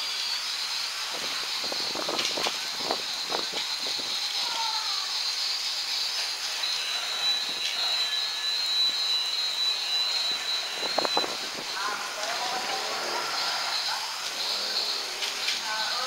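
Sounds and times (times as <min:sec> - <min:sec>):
toy train motor whine: 0:00.0 - 0:16.0
wheels clicking on track: 0:00.0 - 0:16.0.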